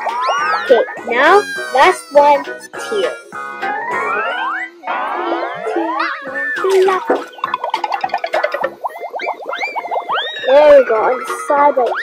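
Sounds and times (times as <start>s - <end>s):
playful plucked music: 0.0s - 12.0s.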